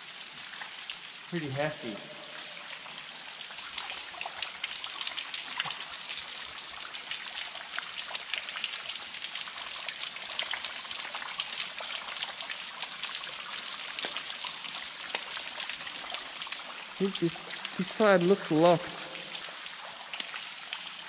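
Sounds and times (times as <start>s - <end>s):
water dripping on stone: 3.4s - 20.9s.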